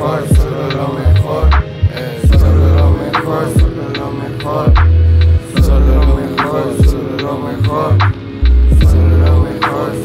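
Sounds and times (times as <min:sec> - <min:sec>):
steady held drone: 0:00.0 - 0:10.0
deep sub-bass notes: 0:01.1 - 0:03.2, 0:04.7 - 0:06.3, 0:07.6 - 0:09.6.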